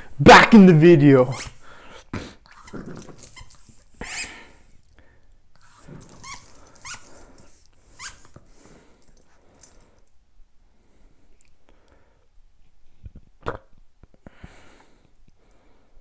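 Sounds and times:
dog growling and whining: 0:02.5 - 0:04.3, 0:05.6 - 0:07.4.

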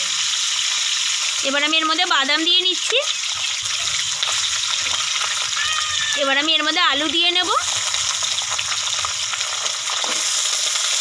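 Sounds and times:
nuts sizzling in hot oil: 0:00.0 - 0:11.0.

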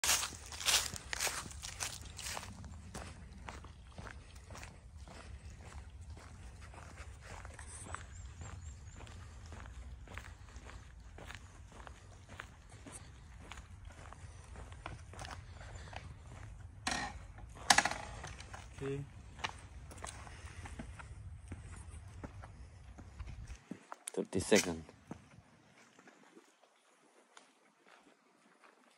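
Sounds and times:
footsteps on dry leaves: 0:00.0 - 0:16.3.

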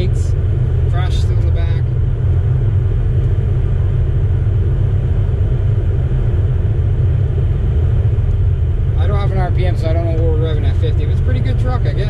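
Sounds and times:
truck engine and road rumble: 0:00.0 - 0:12.0.

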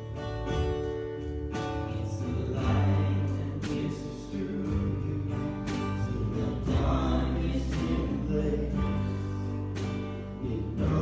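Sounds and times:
choir singing: 0:02.3 - 0:09.2.

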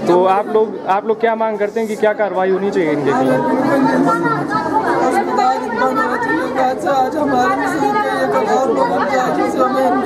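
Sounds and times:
man talking: 0:00.0 - 0:04.4.

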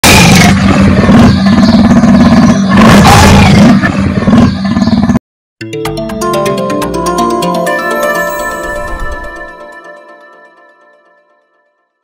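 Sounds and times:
big cat growling and snarling: 0:00.0 - 0:05.0.

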